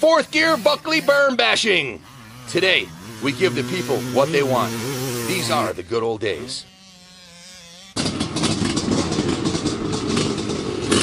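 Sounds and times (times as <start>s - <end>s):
motocross bike engine running: 0.0s - 11.0s.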